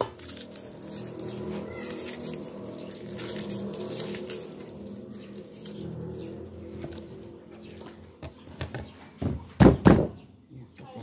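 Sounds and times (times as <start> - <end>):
low hum: 0.0 - 9.6.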